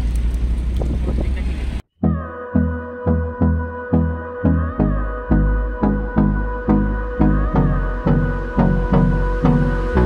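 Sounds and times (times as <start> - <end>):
car cabin engine and road rumble: 0.0 - 1.9.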